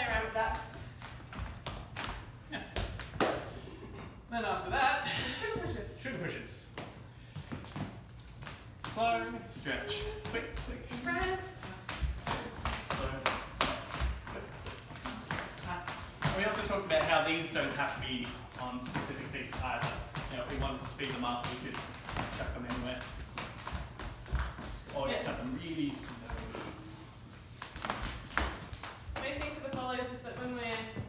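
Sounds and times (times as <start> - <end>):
dance shoes on wooden floor: 0.0 - 3.6, 6.7 - 31.0.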